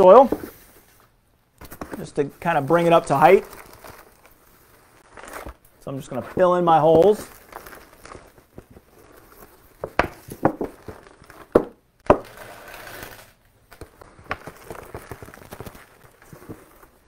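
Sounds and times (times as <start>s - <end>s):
soft rustling: 0.0s - 11.5s, 13.7s - 17.0s
soil pouring from plastic pot: 2.4s - 11.5s.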